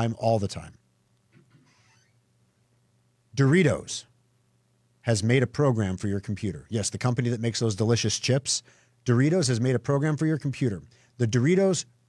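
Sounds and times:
faint low hum: 0.0s - 12.0s
soft breath: 8.6s - 9.0s, 10.9s - 11.2s.

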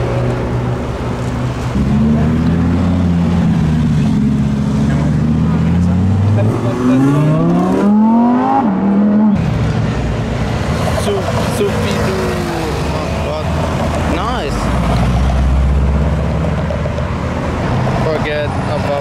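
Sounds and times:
car engine accelerating: 1.2s - 18.3s.

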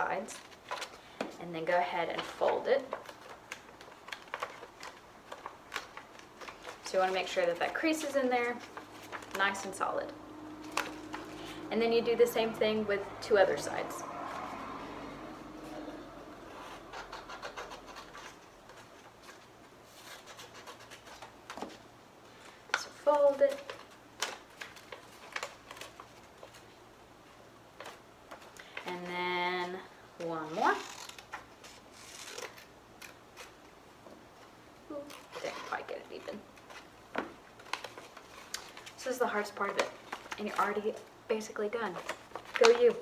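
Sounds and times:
crisp paper crackles: 0.0s - 12.2s, 15.7s - 33.7s, 34.9s - 43.0s
paper rustling: 0.0s - 12.6s, 15.6s - 33.8s, 34.4s - 43.0s
scissors snipping paper: 16.5s - 19.4s, 37.6s - 43.0s.

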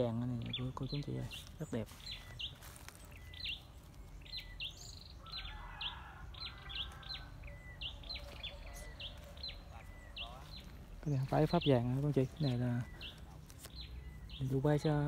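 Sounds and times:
small bird chirping: 0.0s - 15.0s.

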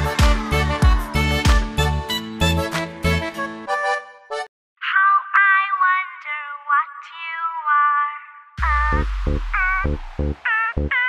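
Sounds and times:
high-pitched cartoon voice squealing: 4.8s - 11.0s.

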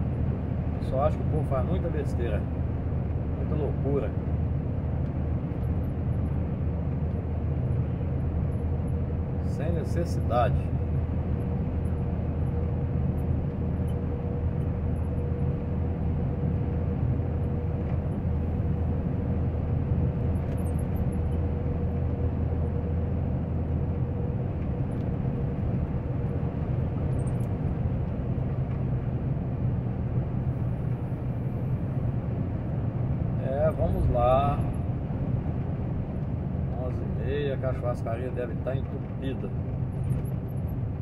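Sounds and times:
road noise: 0.0s - 41.0s
truck engine drone: 0.0s - 41.0s.

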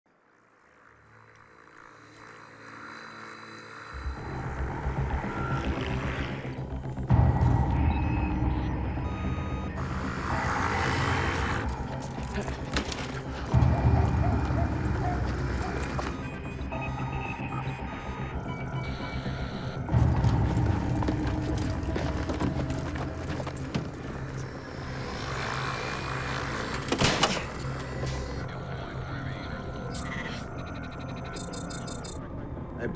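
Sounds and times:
high electronic bleeps: 4.0s - 22.2s, 27.6s - 32.2s.

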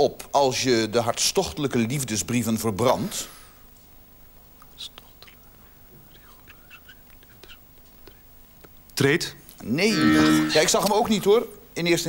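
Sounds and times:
faint whispering: 4.7s - 8.4s.

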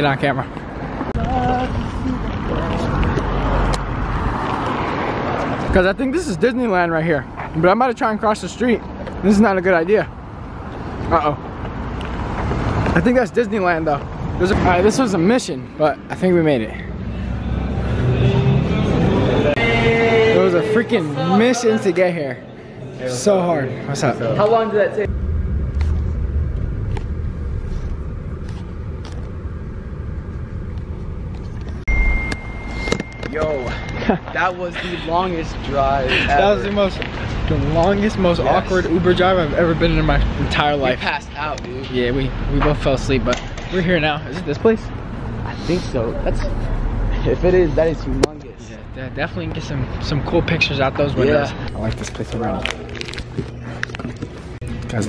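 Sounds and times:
cars passing on busy street: 0.0s - 55.0s.

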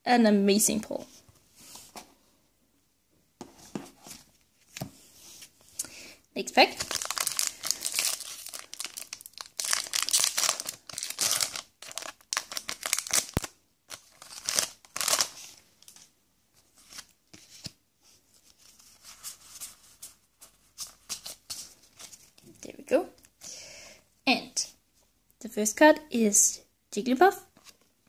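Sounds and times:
cards rustling: 6.7s - 17.8s
foil wrapper tearing and crinkling: 6.8s - 15.5s.

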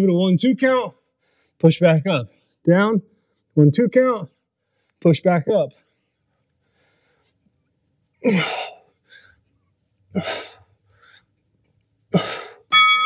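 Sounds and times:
electronic timer beeps: 12.7s - 13.0s.

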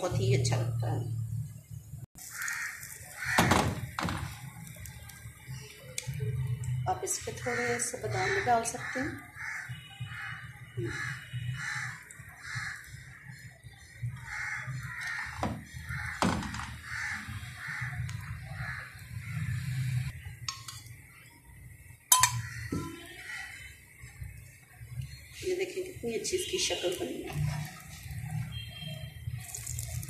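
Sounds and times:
crows cawing: 2.2s - 4.4s, 7.4s - 19.9s, 22.3s - 23.8s
utensils clinking on frying pan: 22.1s - 23.0s.

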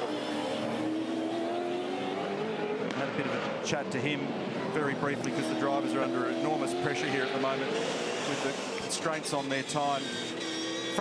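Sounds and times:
engine running at high revs: 0.0s - 11.0s.

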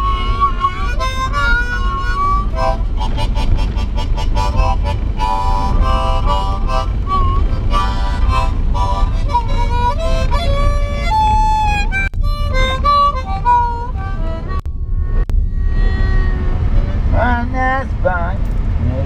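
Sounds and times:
harmonica playing: 0.0s - 17.4s
car cabin rumble: 0.0s - 19.0s.

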